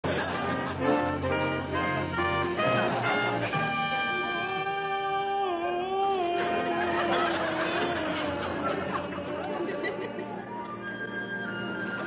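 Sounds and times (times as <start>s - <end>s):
audience chattering and murmuring: 0.0s - 12.0s
faint orchestra: 0.0s - 12.0s
man singing a long held call: 4.2s - 10.1s.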